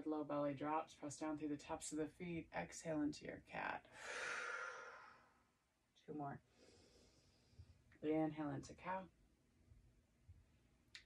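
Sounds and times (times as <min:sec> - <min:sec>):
woman exhaling: 0:03.9 - 0:05.4.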